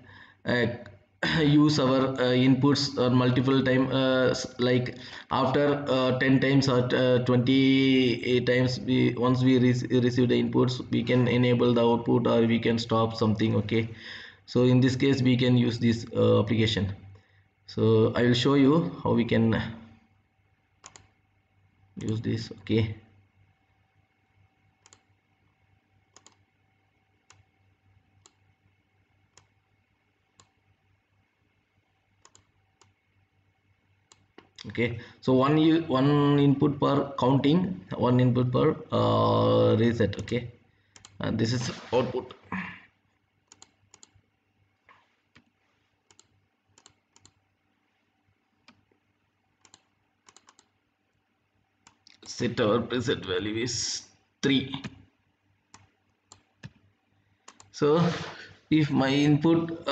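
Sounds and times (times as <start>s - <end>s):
low steady hum: 0.0s - 59.9s
mouse and keyboard clicking: 20.8s - 21.1s, 24.8s - 25.1s, 26.1s - 26.4s, 32.2s - 32.9s, 41.0s - 41.2s, 43.5s - 44.2s, 46.1s - 47.4s, 49.6s - 50.7s
computer mouse clicks: 20.8s - 21.2s, 24.8s - 25.2s, 26.1s - 26.5s, 27.2s - 27.5s, 28.2s - 28.5s, 29.3s - 29.6s, 30.3s - 30.6s, 32.2s - 33.0s, 34.1s - 34.7s, 40.2s - 41.2s, 43.4s - 44.2s, 44.8s - 47.4s, 48.6s - 49.0s, 49.6s - 50.8s, 55.7s - 57.7s.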